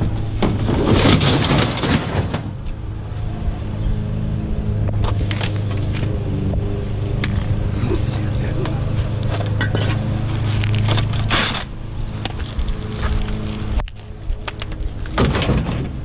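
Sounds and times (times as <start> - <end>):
vehicle engine humming: 0.0 - 16.0.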